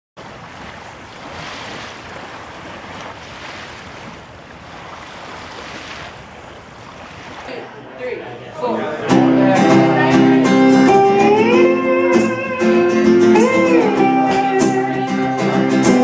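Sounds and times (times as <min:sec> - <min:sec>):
waves washing in: 0:00.2 - 0:10.9.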